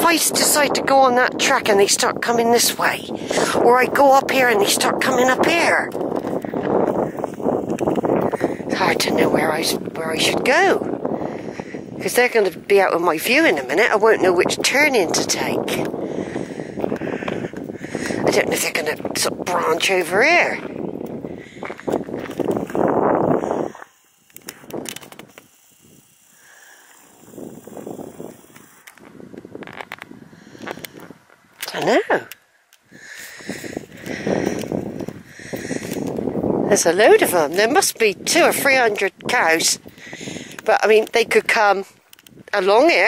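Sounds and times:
wind on microphone: 0.0s - 43.0s
rustling and crackling in grass: 20.4s - 36.4s.

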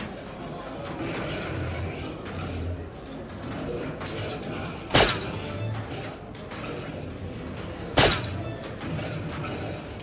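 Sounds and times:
faint murmur of voices: 0.0s - 10.0s.

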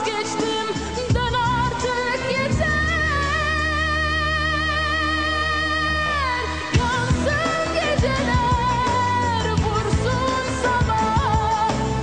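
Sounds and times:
pop music with drums: 0.0s - 12.0s.

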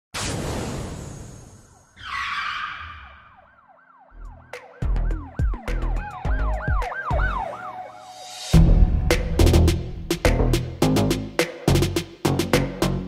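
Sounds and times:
siren-like wail: 1.7s - 8.6s
heavy bass hits: 8.6s - 11.9s.

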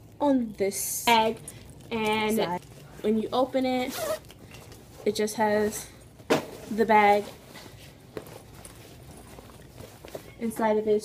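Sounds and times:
fabric bag rustling: 6.6s - 10.6s.

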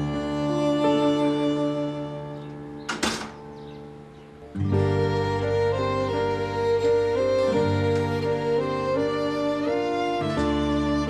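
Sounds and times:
soft background music: 0.0s - 11.0s
door closing with double knock: 2.9s - 3.5s.

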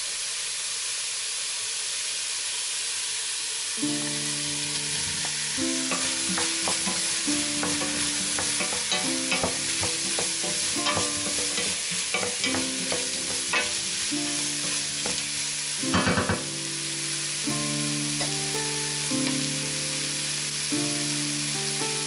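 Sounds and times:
vegetables sizzling in butter: 0.0s - 22.0s
spatula scraping a metal pot: 5.9s - 14.0s.

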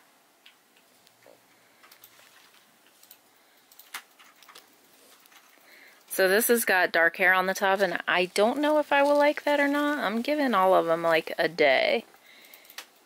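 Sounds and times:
fingers rustling through wig hair: 0.8s - 11.5s.

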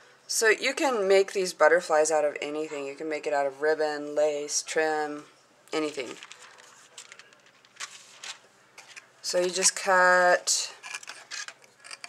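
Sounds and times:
soft handling clicks and rustles: 6.0s - 9.8s.

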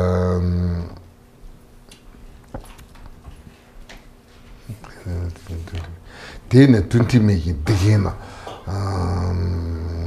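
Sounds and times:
man chanting deep tone: 0.0s - 1.0s, 7.5s - 10.0s.

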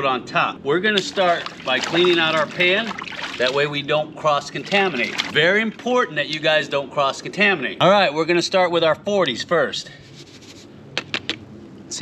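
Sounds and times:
powder sliding with scraping hiss: 9.8s - 10.8s.

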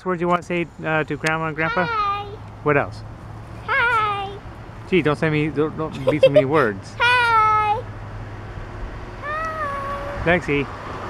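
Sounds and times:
cat meowing: 9.2s - 10.2s.

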